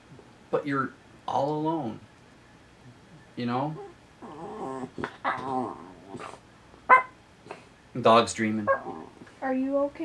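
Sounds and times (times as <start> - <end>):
dog yip: 6.9 - 7.2.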